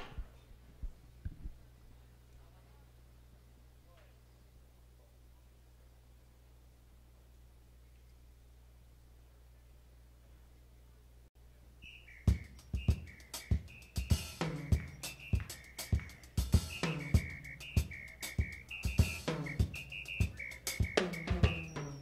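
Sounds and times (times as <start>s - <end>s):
drum kit groove: 12.3s - 22.0s
full band playing: 12.8s - 22.0s.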